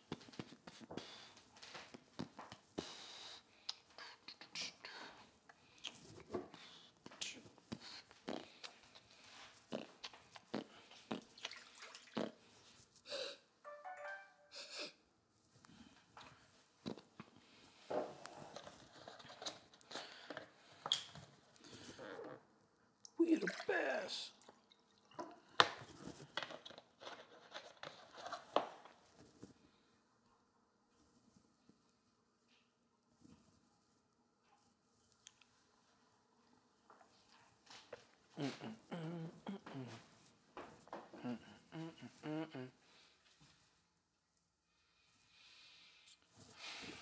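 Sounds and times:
water pouring into a glass: 0:23.3 - 0:25.5.

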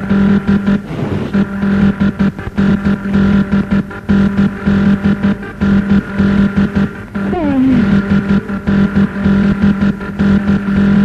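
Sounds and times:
pulsing bass note: 0:07.2 - 0:09.6
electronic hard dance music: 0:07.3 - 0:08.3.

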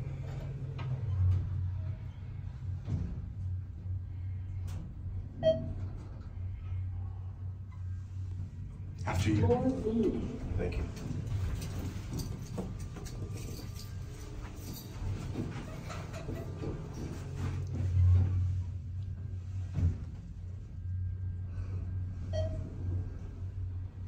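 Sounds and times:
low hum: 0:00.0 - 0:24.0.

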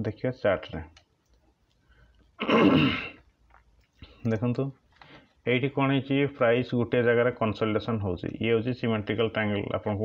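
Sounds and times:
man coughing: 0:02.4 - 0:03.2.

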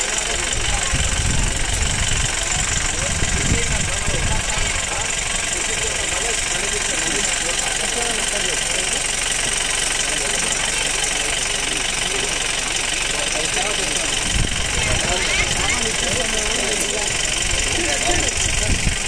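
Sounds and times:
engine idling: 0:00.0 - 0:19.0
indistinct voices talking: 0:00.0 - 0:19.0.

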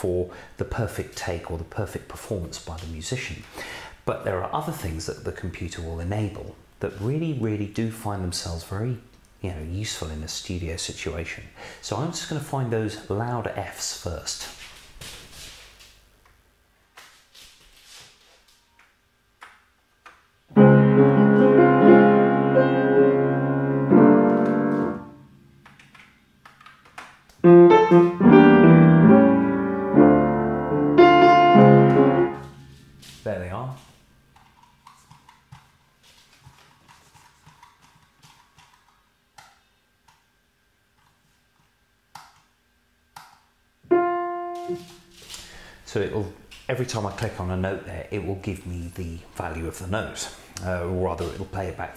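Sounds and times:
piano chords: 0:20.5 - 0:25.6, 0:27.4 - 0:32.8, 0:43.9 - 0:45.0
single piano note ringing: 0:27.5 - 0:32.8, 0:43.9 - 0:45.0.

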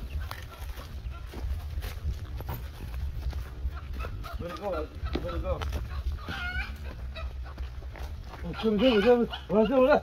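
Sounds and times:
low wind rumble: 0:00.0 - 0:08.8
footsteps through tall weeds: 0:00.0 - 0:10.0.

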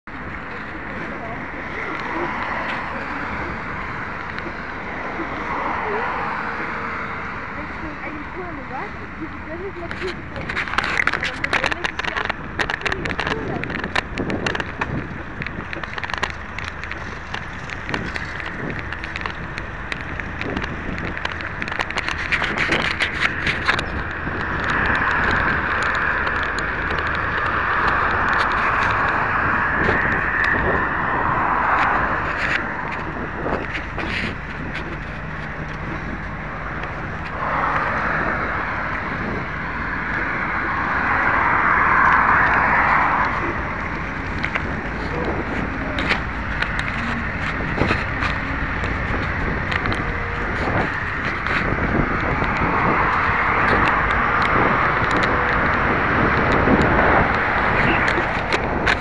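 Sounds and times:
bike rattles and clicks over bumps: 0:00.0 - 0:59.0.

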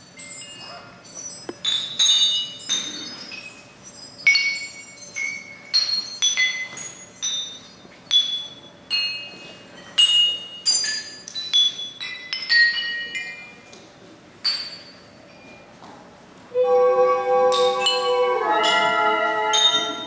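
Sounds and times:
ceramic bells ringing when struck: 0:00.0 - 0:13.7, 0:14.4 - 0:15.7, 0:16.6 - 0:20.0.

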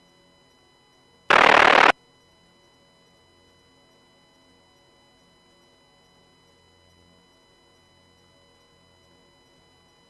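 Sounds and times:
faint steady hum: 0:01.3 - 0:01.9
radio static burst: 0:01.3 - 0:01.9.

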